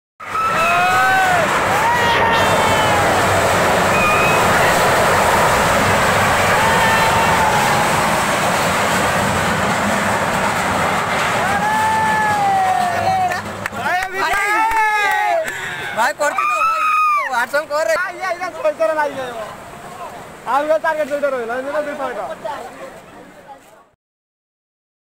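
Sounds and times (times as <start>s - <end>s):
flooded river rushing: 0.2s - 23.5s.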